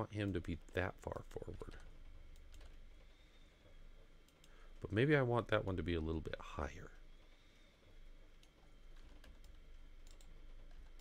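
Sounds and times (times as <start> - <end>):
keyboard and mouse clicks: 8.4 - 11.0.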